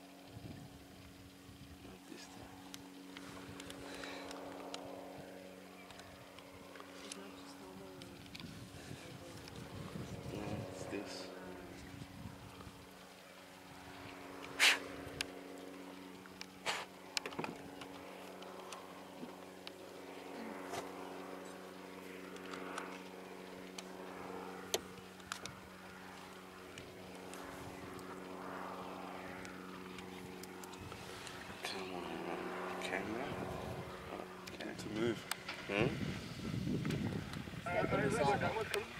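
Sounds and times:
low mechanical hum: 0:00.0 - 0:38.9.

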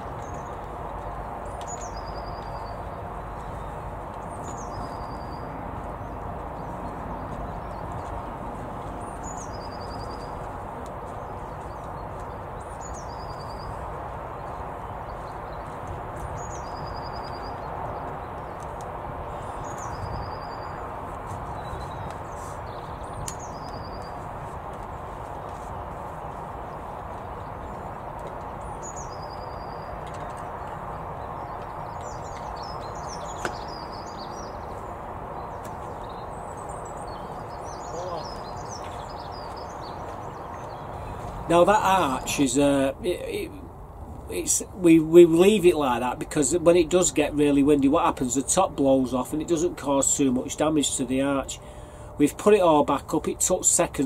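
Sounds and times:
bird chirping: 0:00.0 - 0:54.0
songbird phrase with trill: 0:37.1 - 0:40.0, 0:41.5 - 0:43.7, 0:44.3 - 0:51.6.

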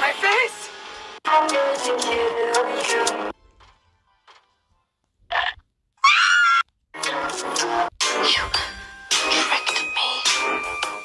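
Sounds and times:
high-pitched wavering cry: 0:06.0 - 0:06.6.

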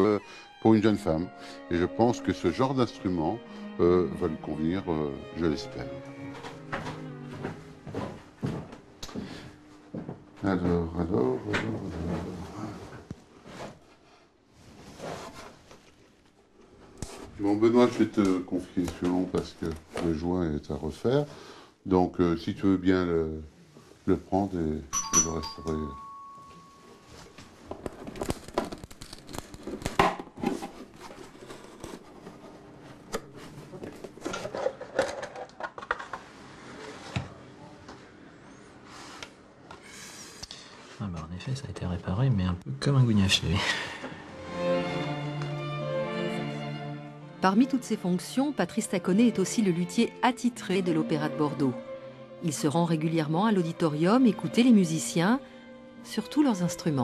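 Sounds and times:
faint rustling handling sounds: 0:07.3 - 0:21.3, 0:23.4 - 0:34.8.

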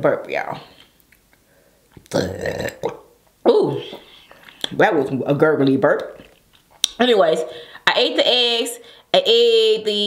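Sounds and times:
woman burping: 0:02.1 - 0:03.1.

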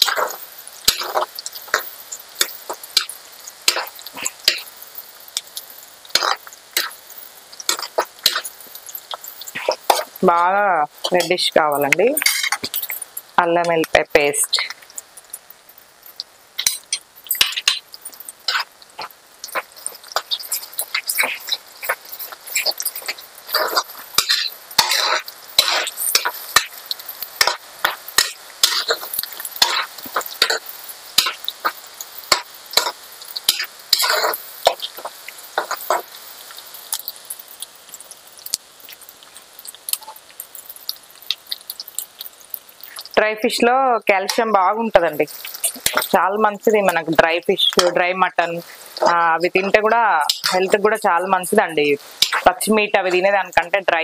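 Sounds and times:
metal spatula scraping pan: 0:00.0 - 0:04.8, 0:06.1 - 0:07.1, 0:07.7 - 0:10.2, 0:16.6 - 0:36.2, 0:47.7 - 0:51.3, 0:52.0 - 0:53.3
onions sizzling in hot oil: 0:00.0 - 0:54.0.

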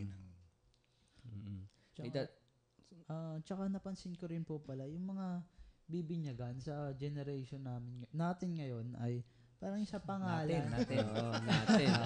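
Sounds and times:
man speaking: 0:00.0 - 0:00.4, 0:01.3 - 0:12.0.

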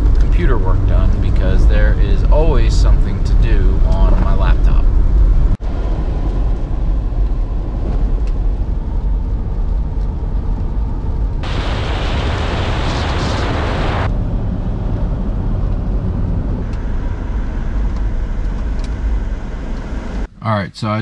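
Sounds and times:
car road noise rumble: 0:00.0 - 0:20.3
rushing hiss of wet road: 0:11.4 - 0:14.1.

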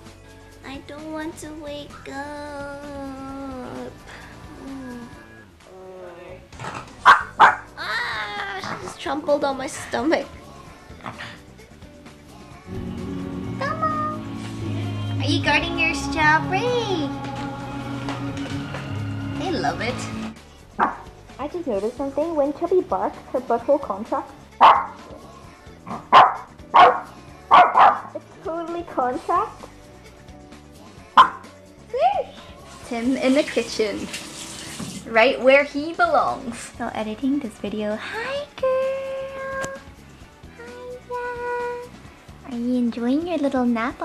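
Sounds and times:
small dog barking: 0:07.0 - 0:07.7, 0:20.8 - 0:21.1, 0:24.6 - 0:25.0, 0:25.9 - 0:28.2, 0:31.2 - 0:31.5.

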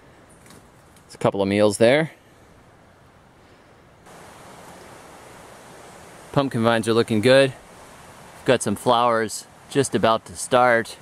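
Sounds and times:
outdoor background rush: 0:00.0 - 0:11.0.

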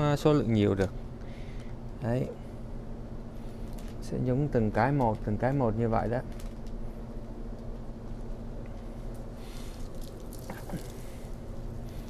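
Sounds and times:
steady low hum: 0:00.0 - 0:12.0
liquid splashing and swishing: 0:09.4 - 0:12.0.

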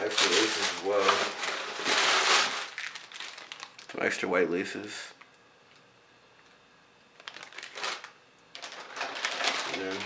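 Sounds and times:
paper and plastic bags crinkling: 0:00.0 - 0:04.1, 0:07.2 - 0:10.0.

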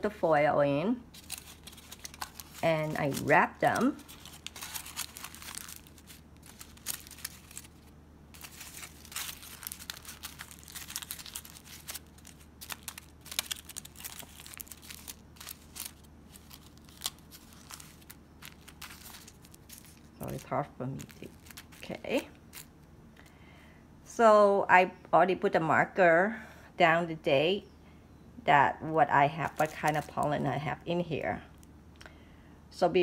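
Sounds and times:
aluminium foil crinkling: 0:01.0 - 0:22.8, 0:29.3 - 0:31.7.

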